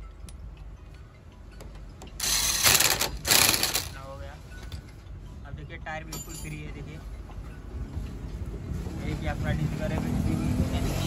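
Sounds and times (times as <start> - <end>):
impact wrench hammering: 2.2 - 4.0.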